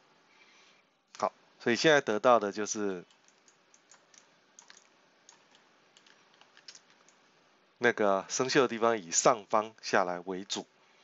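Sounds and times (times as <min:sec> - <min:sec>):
keyboard and mouse clicks: 0:03.0 - 0:07.2.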